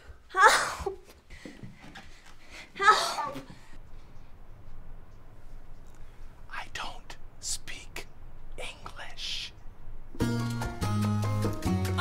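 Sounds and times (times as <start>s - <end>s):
man whispering: 6.4s - 9.6s.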